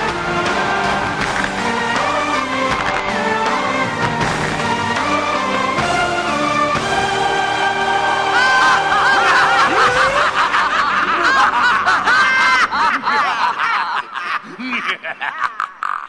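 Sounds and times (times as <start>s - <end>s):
soundtrack music chord: 0.0s - 11.2s
many voices laughing: 8.4s - 16.0s.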